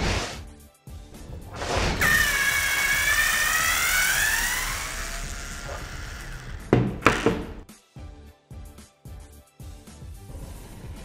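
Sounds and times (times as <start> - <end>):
screwdriver motor whining: 1.2 - 7.6
sharp knocks: 5.8 - 7.6.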